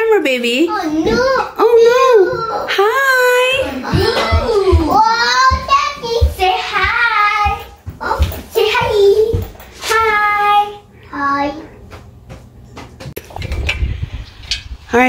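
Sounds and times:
child singing sing-song phrases: 3.9s - 11.6s.

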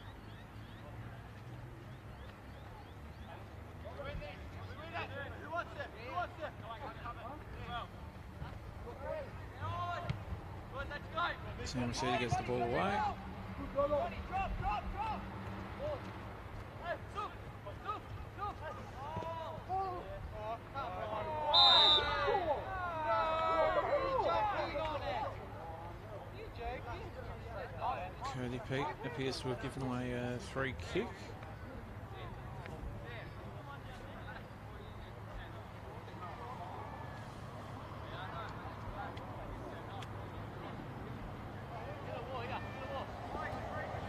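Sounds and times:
players shouting: 2.4s - 16.1s, 16.7s - 25.6s, 40.6s - 44.0s
shrill referee's whistle: 21.5s - 22.3s.

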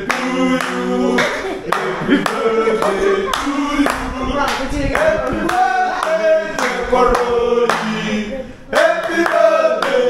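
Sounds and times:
men singing together: 0.0s - 10.0s
hands clapping: 0.1s - 7.9s, 8.8s - 10.0s.

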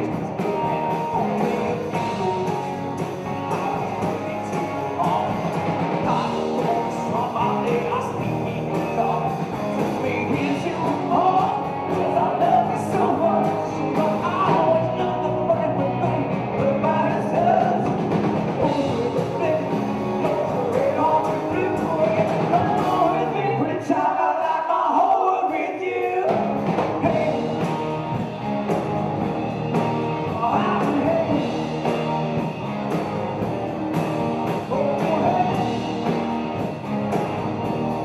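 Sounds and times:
live rock band playing: 0.0s - 23.9s, 26.0s - 38.0s
man singing lead: 0.0s - 38.0s.

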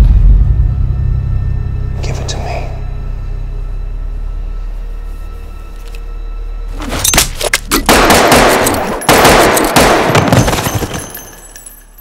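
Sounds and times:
gunfire volley: 7.9s - 11.0s.

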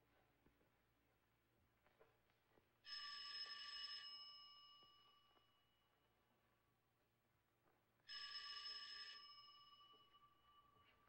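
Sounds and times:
telephone bell ringing: 2.9s - 5.8s, 8.1s - 11.0s.

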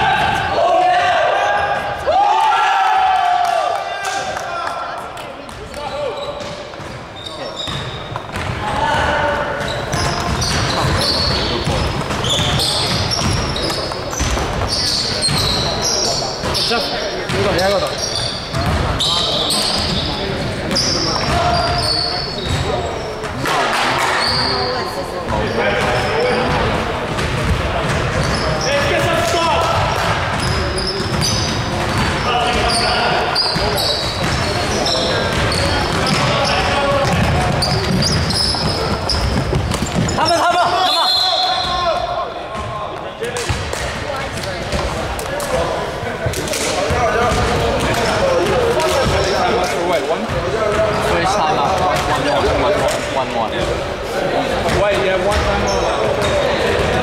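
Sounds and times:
players calling out: 0.0s - 57.0s
sneakers squeaking: 5.3s - 57.0s
basketball bouncing: 9.6s - 15.6s, 18.5s - 19.0s, 29.2s - 32.8s, 33.5s - 34.6s, 35.2s - 40.5s, 46.9s - 49.4s.

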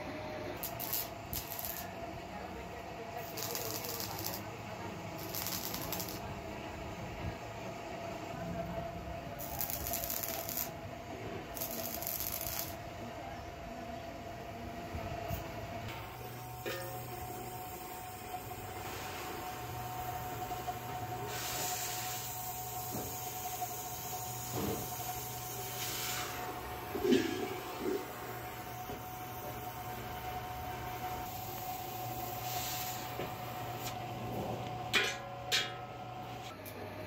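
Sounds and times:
low workshop hum: 0.0s - 37.0s
arc welding hissing bursts: 0.6s - 2.0s, 3.2s - 4.5s, 5.2s - 6.3s, 9.4s - 10.8s, 11.5s - 12.8s, 20.5s - 26.6s, 31.2s - 33.9s
gas torch flame hissing: 0.6s - 2.0s, 3.2s - 4.5s, 5.2s - 6.3s, 9.4s - 10.7s, 11.5s - 12.8s, 16.7s - 34.0s.

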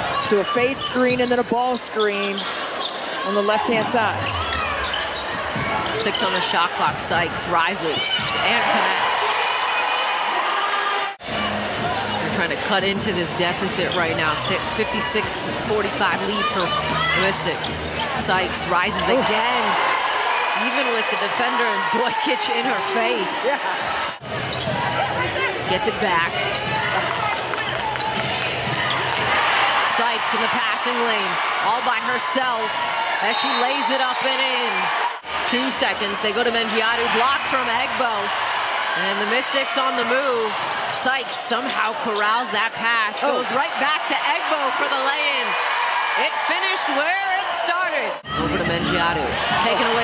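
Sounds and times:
murmur of crowd: 0.0s - 50.0s
sneakers squeaking: 0.1s - 7.4s, 11.3s - 19.3s, 24.2s - 29.8s.

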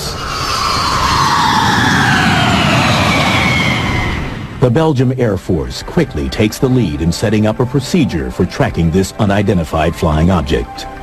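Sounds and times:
whoosh with falling pitch: 0.0s - 4.8s.

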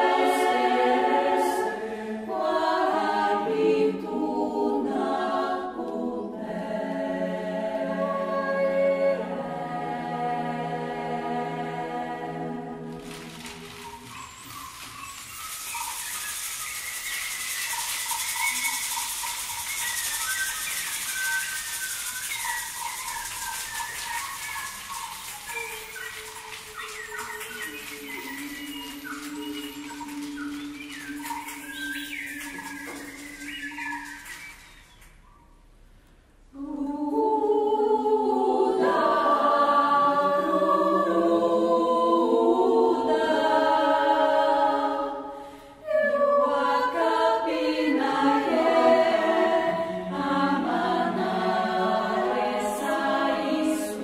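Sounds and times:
choir singing in harmony: 0.0s - 34.6s, 36.5s - 54.0s
choir hissing: 0.0s - 35.2s, 36.5s - 54.0s
whistled bird-like chirps: 13.1s - 35.8s.

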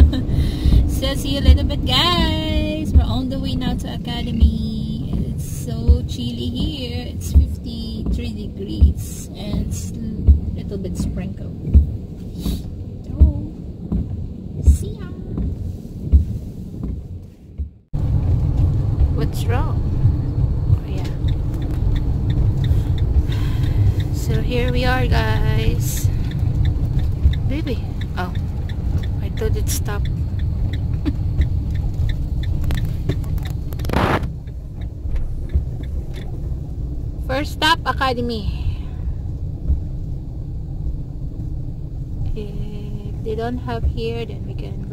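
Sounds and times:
road noise inside van cab: 0.0s - 44.9s
turn signal ticking: 0.0s - 44.9s
soft low thump: 4.2s - 36.3s.

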